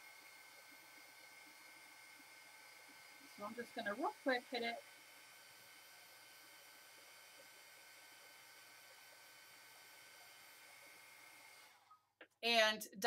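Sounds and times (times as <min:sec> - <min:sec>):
heat gun blowing: 0:00.0 - 0:11.9.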